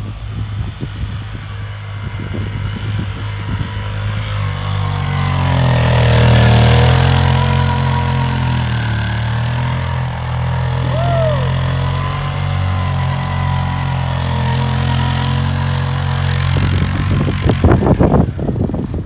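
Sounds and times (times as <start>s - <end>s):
quad bike engine revving: 0.0s - 19.0s
high falling squeal: 6.0s - 16.0s.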